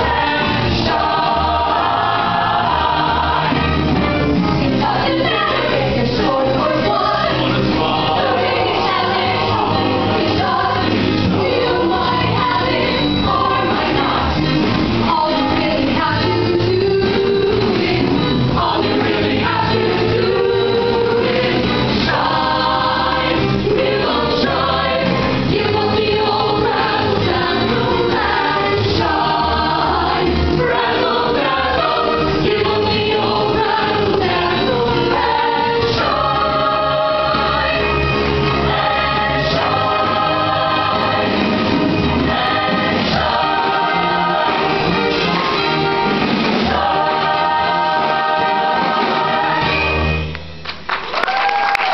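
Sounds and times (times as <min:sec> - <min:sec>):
choir singing: 0:00.0 - 0:50.2
instrumental backing with bass: 0:00.0 - 0:50.9.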